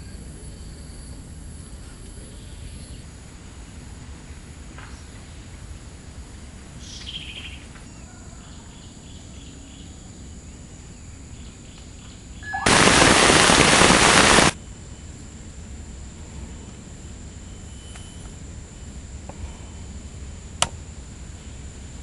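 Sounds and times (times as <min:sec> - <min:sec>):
faint chirps: 0:12.4 - 0:14.6
loud even hiss: 0:12.4 - 0:14.6.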